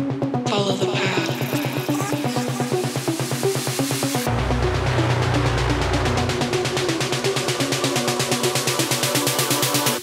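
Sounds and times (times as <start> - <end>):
short synth notes: 4.3 - 7.6
deep sustained bass note: 4.3 - 7.8.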